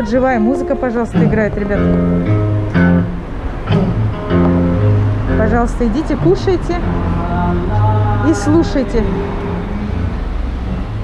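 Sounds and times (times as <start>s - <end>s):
live music with low held notes: 0.0s - 11.0s.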